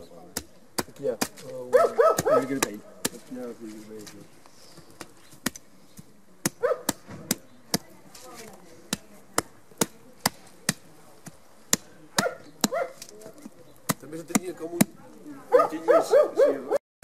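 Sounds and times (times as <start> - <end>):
dog yelping: 1.8 - 2.5, 6.6 - 6.9, 15.5 - 16.8.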